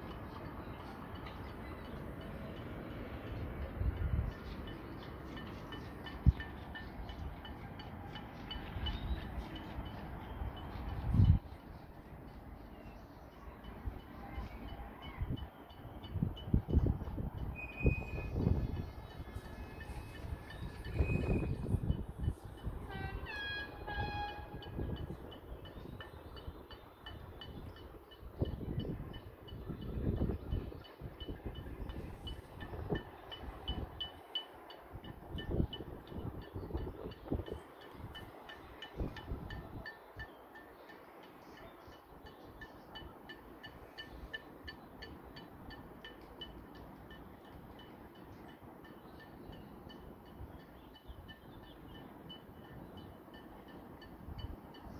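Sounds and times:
horn honks: 22.8 - 24.8.

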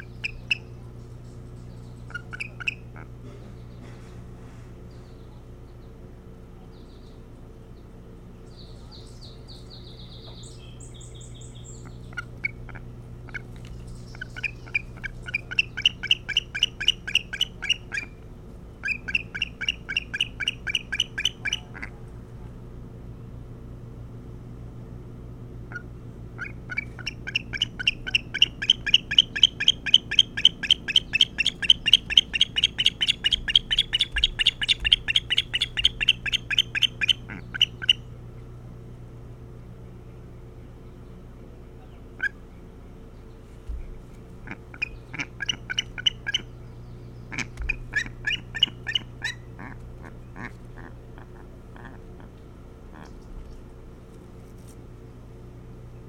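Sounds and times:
osprey chirping: 0.0 - 2.9, 8.4 - 18.2, 18.8 - 21.8, 25.7 - 38.2, 41.8 - 50.5.

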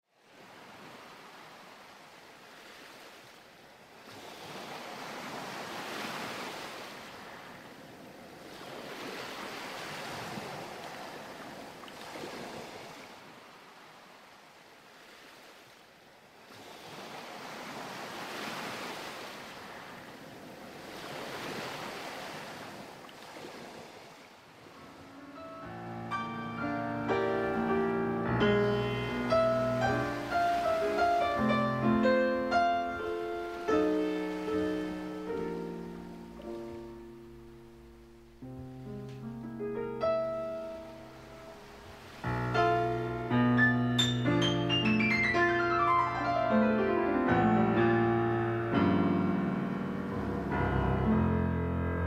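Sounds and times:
ocean waves washing: 4.0 - 52.0.

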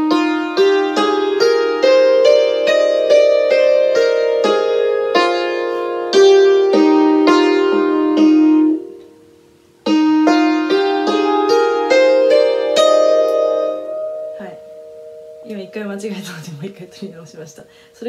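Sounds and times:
hammered dulcimer scale: 0.0 - 9.1, 9.8 - 17.2.

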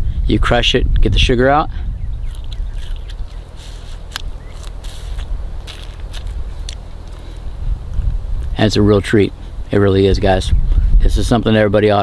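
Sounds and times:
low background rumble: 0.0 - 12.0
person chewing and sucking: 2.2 - 8.6
soft crunches and clicks: 2.3 - 8.6.

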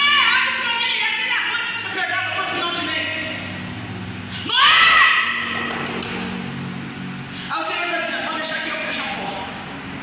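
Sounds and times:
person shouting: 4.4 - 5.6
low sustained keyboard notes: 5.5 - 10.0.

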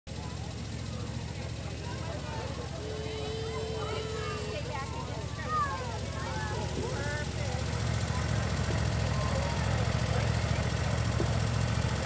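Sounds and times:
crowd chattering: 0.1 - 12.0
small engine idling: 0.1 - 12.0.

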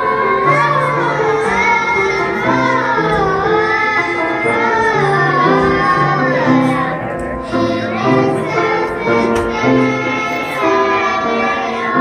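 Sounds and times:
children singing: 0.0 - 12.0
piano accompaniment: 0.0 - 12.0.

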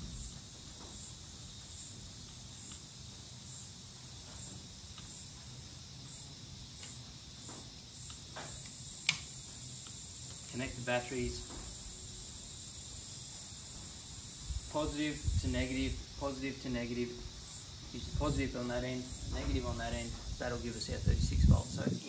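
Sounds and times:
high insect chirps: 0.0 - 22.0
metallic clicks on battery terminals: 6.7 - 7.1, 7.9 - 10.8.

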